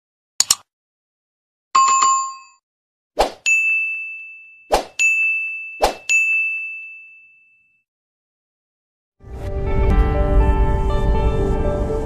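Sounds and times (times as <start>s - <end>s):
bright bell-like ding: 3.5s - 7.7s.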